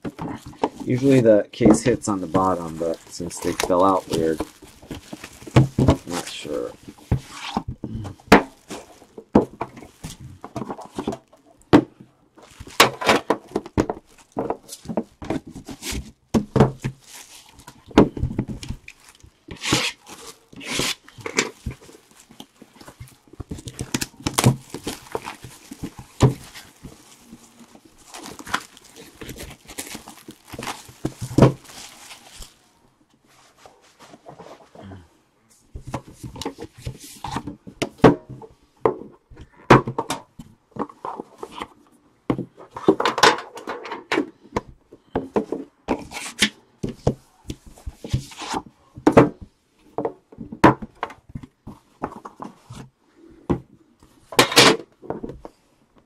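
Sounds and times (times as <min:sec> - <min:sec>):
boxes knocking and scraping on table: 0:00.0 - 0:17.1, 0:17.8 - 0:18.8, 0:42.3 - 0:52.9.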